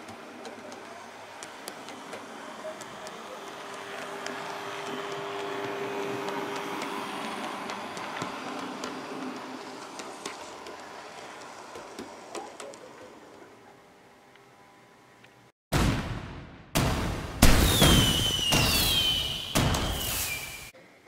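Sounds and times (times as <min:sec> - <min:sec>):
model train motor hum: 0:00.0 - 0:13.7
wheels clicking on rails: 0:00.0 - 0:13.8.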